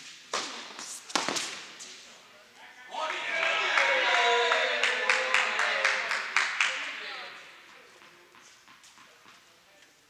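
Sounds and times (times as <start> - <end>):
tennis ball racket strokes: 0.0 - 2.2
tennis ball bouncing: 0.3 - 1.7, 7.7 - 9.5.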